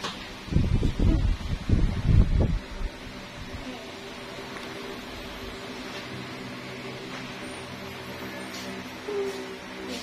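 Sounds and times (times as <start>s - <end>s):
wind buffeting microphone: 0.5s - 3.6s.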